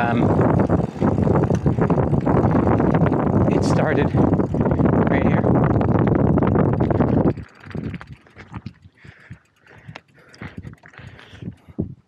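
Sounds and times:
bicycle tyres on paved path: 0:00.0 - 0:12.0
wind buffeting microphone: 0:00.0 - 0:12.0.

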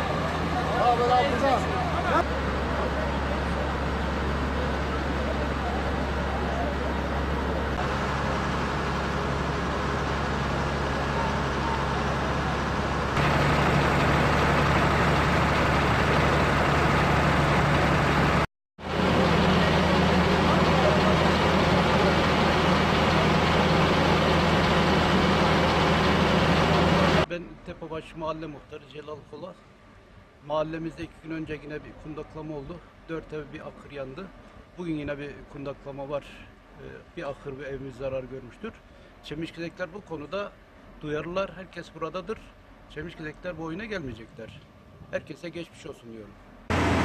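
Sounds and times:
fire engine humming: 0:00.0 - 0:27.3, 0:46.7 - 0:47.0.

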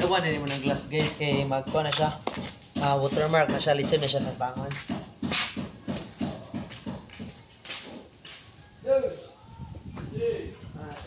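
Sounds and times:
footsteps on wet concrete: 0:00.0 - 0:08.6.

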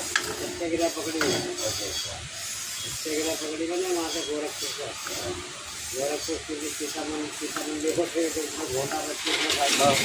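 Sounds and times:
fire hissing: 0:00.0 - 0:10.0
man talking: 0:00.4 - 0:02.3, 0:03.0 - 0:10.0.

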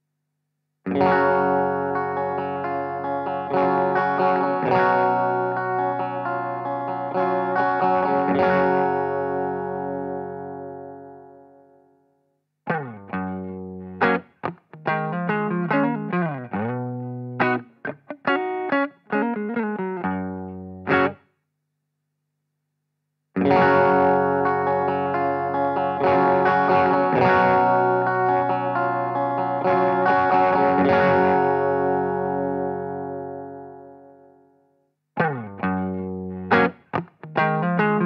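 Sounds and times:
electric guitar chords and notes: 0:00.9 - 0:11.9, 0:12.6 - 0:21.2, 0:23.4 - 0:34.6, 0:35.2 - 0:38.0.

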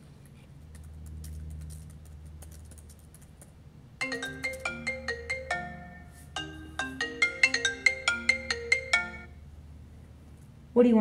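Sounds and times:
steady low hum: 0:00.0 - 0:11.0
typing on laptop keyboard: 0:00.6 - 0:03.6
phone ringtone melody: 0:04.0 - 0:09.4.

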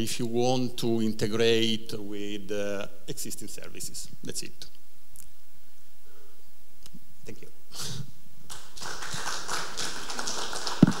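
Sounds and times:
audience applauding: 0:08.5 - 0:11.0.

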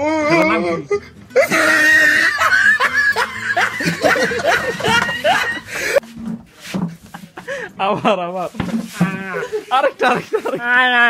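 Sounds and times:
people laughing: 0:00.8 - 0:06.0, 0:06.9 - 0:08.4, 0:09.1 - 0:11.0.

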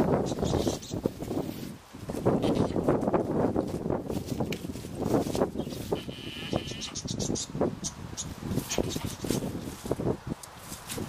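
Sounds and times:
goats scuffling: 0:00.5 - 0:06.4, 0:08.4 - 0:11.0.

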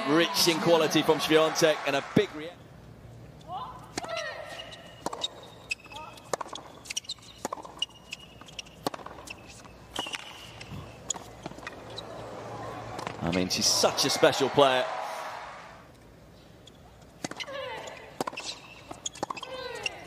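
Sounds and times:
tennis ball bouncing on hard court: 0:03.9 - 0:12.3, 0:17.2 - 0:20.0
tennis ball struck by rackets: 0:05.0 - 0:05.4, 0:06.2 - 0:07.9, 0:08.7 - 0:12.2.

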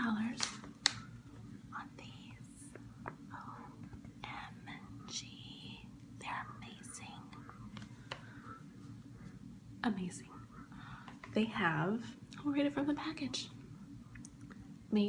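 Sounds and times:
woman whispering: 0:01.7 - 0:07.7, 0:09.8 - 0:10.7.

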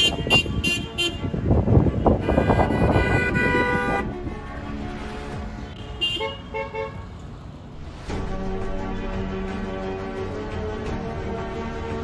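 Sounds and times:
car horn honking: 0:00.0 - 0:04.1, 0:05.6 - 0:07.1.

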